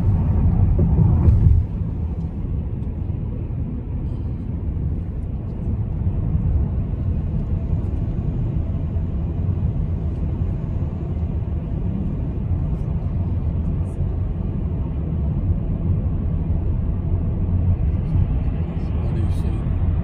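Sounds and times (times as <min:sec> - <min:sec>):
car engine rumble: 0:00.0 - 0:20.0
tyre road noise: 0:00.0 - 0:20.0.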